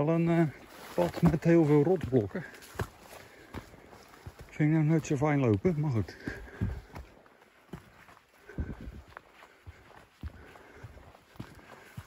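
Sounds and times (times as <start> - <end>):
footsteps on rocky trail: 0.0 - 12.0.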